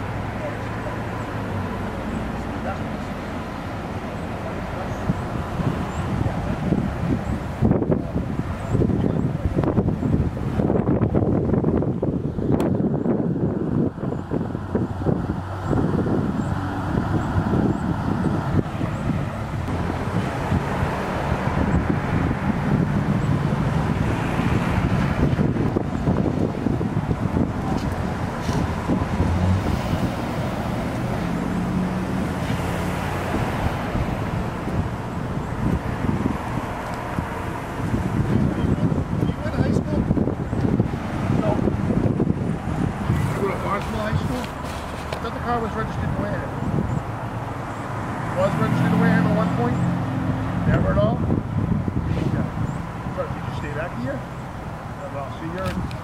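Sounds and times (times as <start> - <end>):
idling vehicles and passing traffic: 0.0 - 56.0
wind buffeting the microphone: 4.1 - 56.0.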